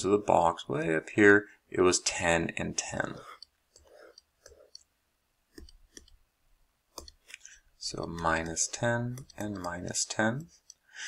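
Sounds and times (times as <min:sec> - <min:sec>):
computer mouse clicking: 0:03.2 - 0:04.9, 0:05.5 - 0:06.2, 0:06.9 - 0:10.8.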